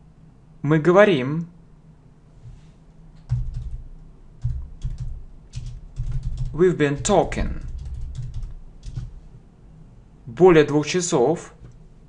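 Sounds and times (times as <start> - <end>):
typing on computer keyboard: 3.2 - 9.2.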